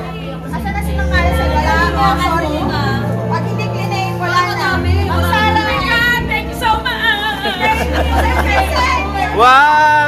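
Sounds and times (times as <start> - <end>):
background music: 0.0 - 10.0
people talking excitedly: 0.0 - 10.0.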